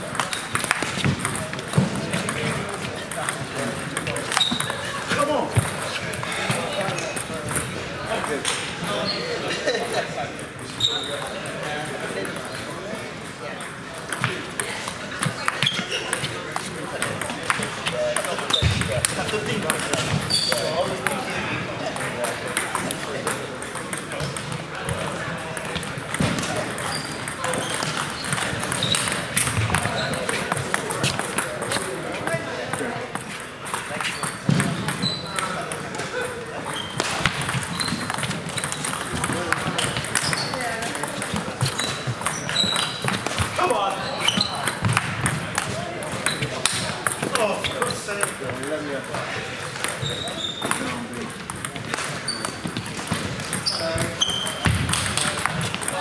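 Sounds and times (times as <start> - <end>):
table tennis ball clicking: 0.1 - 2.5, 36.6 - 43.5, 44.5 - 48.6, 49.7 - 56.0.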